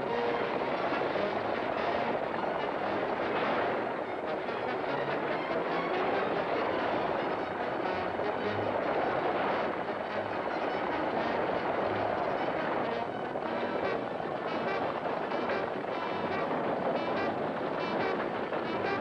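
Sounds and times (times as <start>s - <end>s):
orchestral film music: 0.0s - 19.0s.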